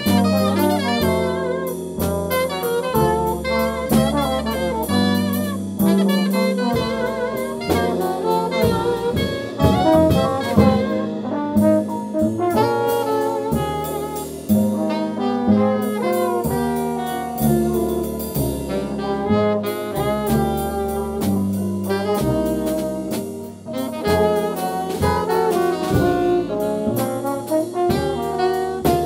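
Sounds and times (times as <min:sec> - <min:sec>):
drum kit cymbals: 0:00.0 - 0:29.0
saxophone: 0:00.0 - 0:29.0
trombone: 0:00.0 - 0:29.0
walking upright bass: 0:00.0 - 0:29.0.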